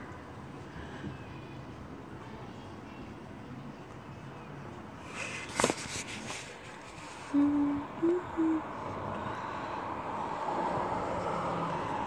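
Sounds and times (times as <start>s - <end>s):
city background noise: 0.0s - 12.0s
person humming: 7.3s - 9.0s.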